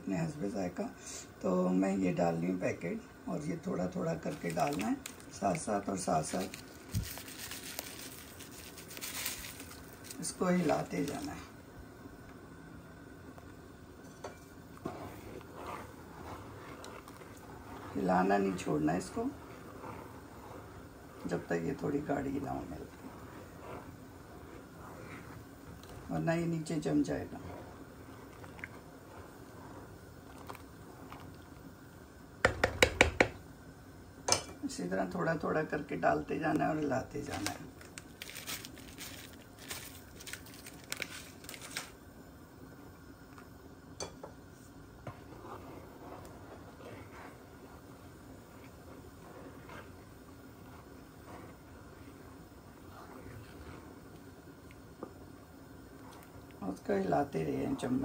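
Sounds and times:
low steady hiss: 0.0s - 58.0s
wooden spatula stirring in metal pan: 1.5s - 11.6s, 14.0s - 31.7s, 32.4s - 33.4s, 34.3s - 42.0s, 44.0s - 58.0s.

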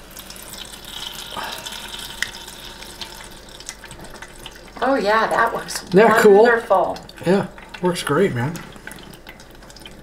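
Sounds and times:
grease pouring through a filter: 0.0s - 10.0s.

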